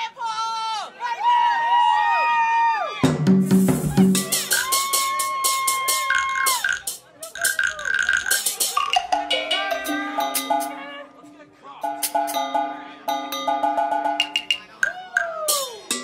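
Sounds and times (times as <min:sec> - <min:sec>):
drum beat and bass line: 0:03.0 - 0:11.0, 0:11.8 - 0:16.0
held synth notes: 0:06.2 - 0:16.0.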